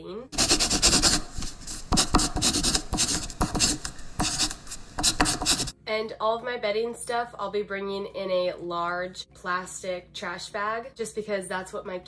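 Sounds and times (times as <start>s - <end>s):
pen scratching across paper: 0.4s - 5.8s.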